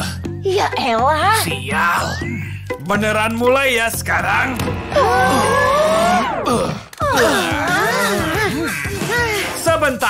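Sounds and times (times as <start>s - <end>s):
voices drawn-out ooh: 4.9s - 9.3s.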